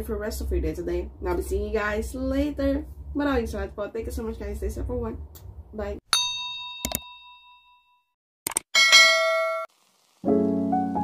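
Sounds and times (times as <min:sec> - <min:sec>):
bell-like ding: 0:06.2 - 0:08.1, 0:08.8 - 0:09.7
soft piano chords: 0:10.3 - 0:11.0.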